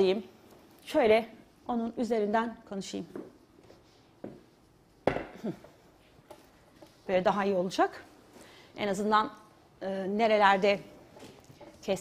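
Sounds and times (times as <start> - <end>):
faint knocks and rustles: 3.0 - 7.3, 11.0 - 12.0.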